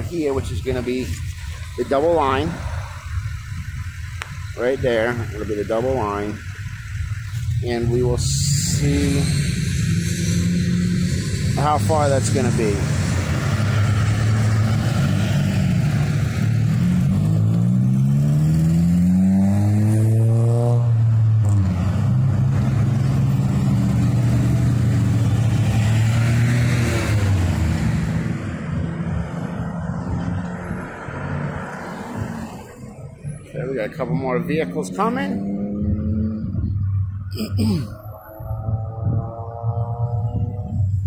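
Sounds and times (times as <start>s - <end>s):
road traffic passing: 0.0s - 41.0s
vehicle engine accelerating: 0.0s - 41.0s.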